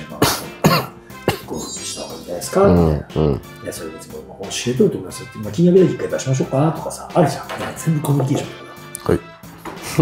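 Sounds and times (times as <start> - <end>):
soft background music: 0.0 - 10.0
throaty bursts from a person: 2.7 - 3.6.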